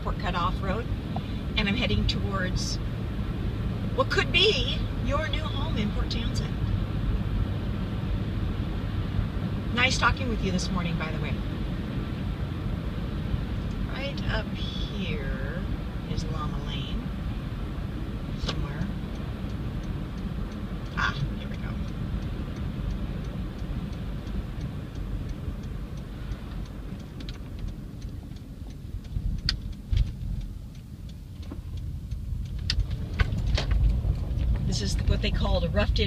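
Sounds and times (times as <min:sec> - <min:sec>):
car cabin road rumble: 0:00.0 - 0:36.0
sharp clicks and knocks: 0:20.1 - 0:35.1.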